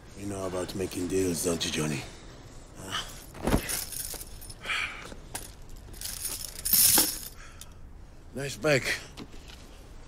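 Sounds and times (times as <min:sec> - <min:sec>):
iron chain clinking: 0:02.9 - 0:07.8.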